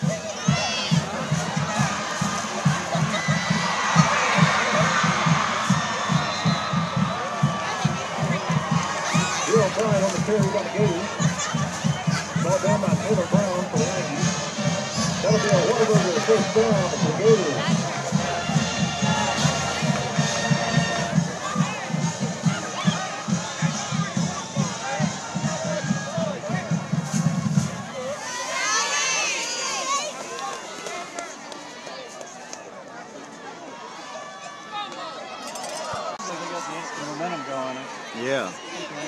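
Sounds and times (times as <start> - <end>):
drum beating steady pulse: 0.0 - 28.8
high voices cheering: 0.0 - 32.5
stadium crowd noise: 0.0 - 39.0.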